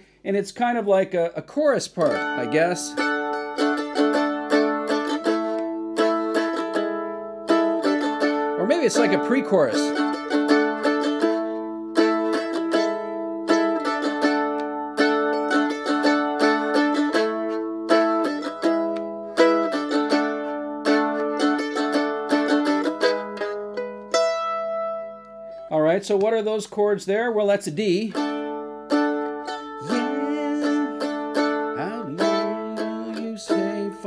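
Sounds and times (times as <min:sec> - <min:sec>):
mandolin picked melody line: 0:00.8 - 0:34.0
mandolin strumming chords: 0:00.8 - 0:34.0.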